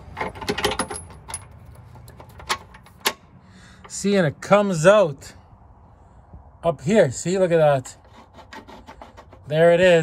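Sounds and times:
metal bolt clinking and scraping: 0.0 - 3.2, 7.9 - 9.6.

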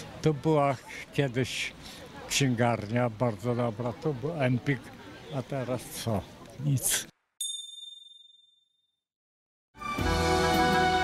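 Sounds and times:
high-pitched bell-like chime: 7.4 - 8.7.

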